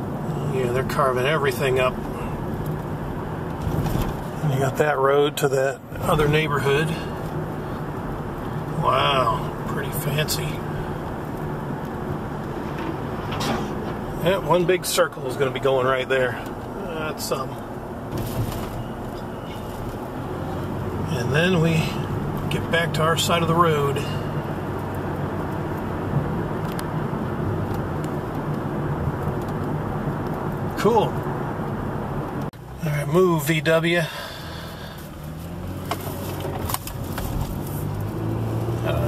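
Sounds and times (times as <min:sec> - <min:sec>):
car engine and road noise: 0:00.0 - 0:39.0.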